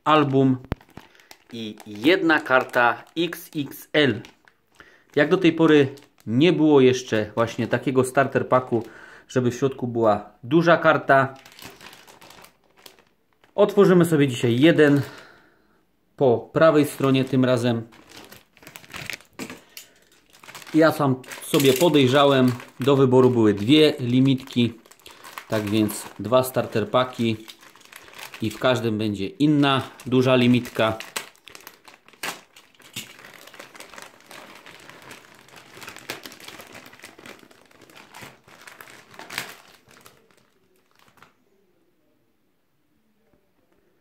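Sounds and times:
plastic packaging crinkling: 0.0s - 9.0s, 10.9s - 15.4s, 16.6s - 41.4s.

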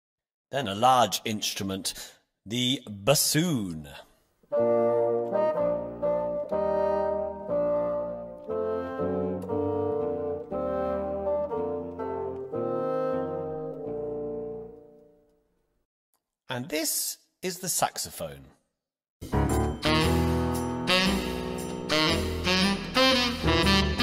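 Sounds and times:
bassoon melody: 4.5s - 15.2s, 19.3s - 24.0s.

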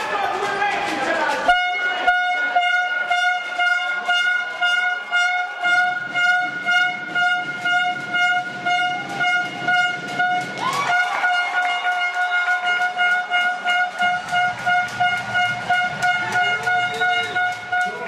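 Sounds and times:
rhythmic beat: 0.0s - 18.0s
high horn-like tone: 1.5s - 18.0s.

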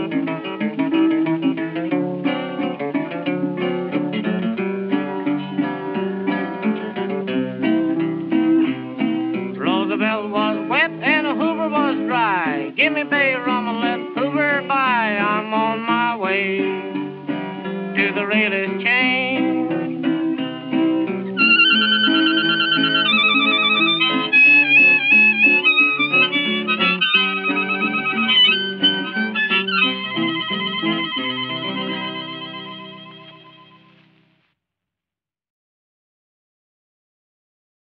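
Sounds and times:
picked acoustic guitar: 0.0s - 34.2s
harmonica playing melody: 21.4s - 34.0s.

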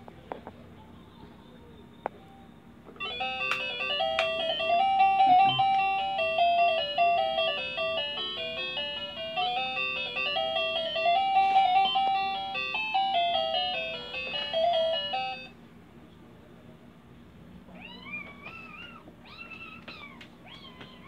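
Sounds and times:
toy beeping tune: 3.0s - 15.5s.

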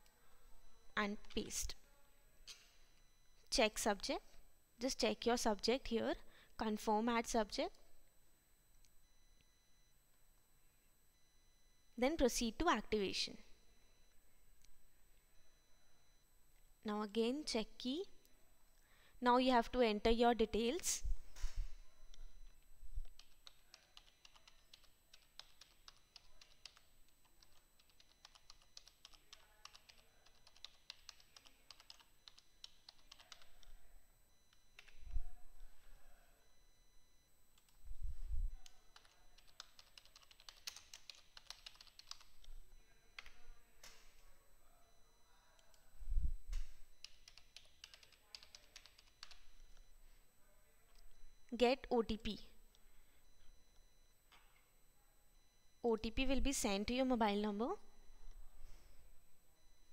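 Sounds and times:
keyboard typing: 23.0s - 33.7s, 38.6s - 42.5s, 47.0s - 49.5s.

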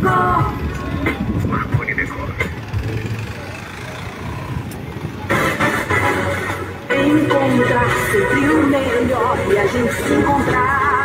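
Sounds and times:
street noise hum: 0.0s - 11.0s
motorcycle engine passing: 0.8s - 6.8s.

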